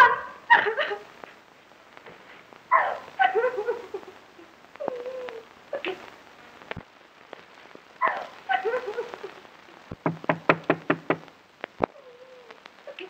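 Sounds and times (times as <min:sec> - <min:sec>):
woman sobbing: 0:00.0 - 0:01.2, 0:02.7 - 0:06.1, 0:08.0 - 0:09.5
film soundtrack crackle: 0:00.0 - 0:13.0.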